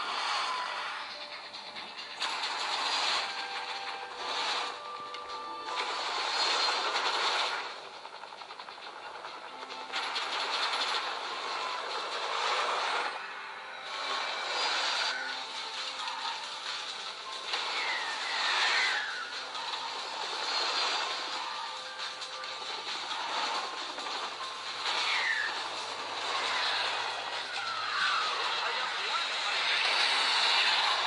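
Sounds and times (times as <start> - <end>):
rushing engine-like noise: 0.0 - 31.0.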